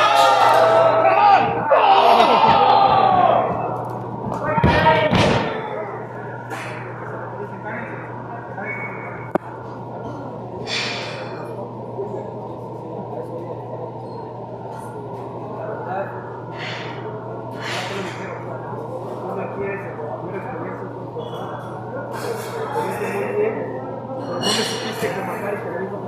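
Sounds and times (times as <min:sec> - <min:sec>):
room noise: 0:00.0 - 0:26.0
shouting voices in a hall: 0:00.0 - 0:26.0.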